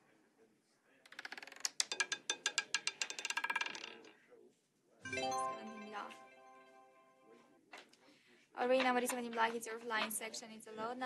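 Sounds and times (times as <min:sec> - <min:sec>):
roulette ball clattering: 0:01.0 - 0:04.2.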